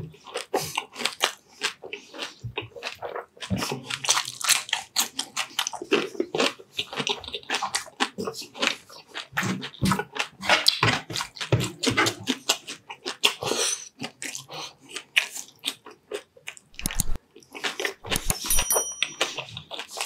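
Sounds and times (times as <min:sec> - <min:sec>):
crunching and chewing crispy food: 0:00.0 - 0:18.4, 0:19.2 - 0:20.0.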